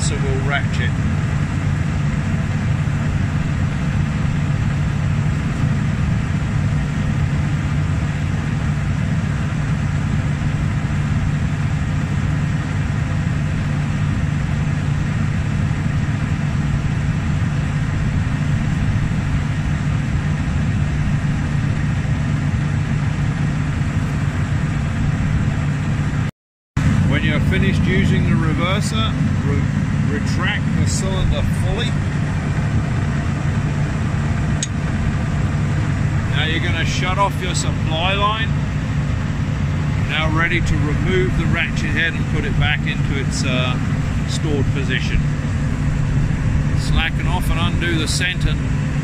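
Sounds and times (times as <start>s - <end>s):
combine engine droning: 0.0s - 49.0s.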